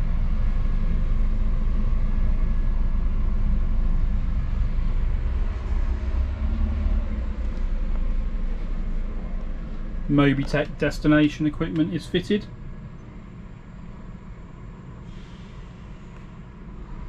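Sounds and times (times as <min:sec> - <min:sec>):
low mechanical hum and rumble: 0:00.0 - 0:17.0.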